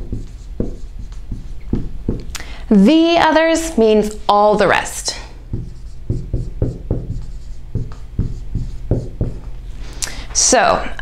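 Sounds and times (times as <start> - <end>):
marker writing on whiteboard: 0.0 - 2.2, 5.5 - 9.5.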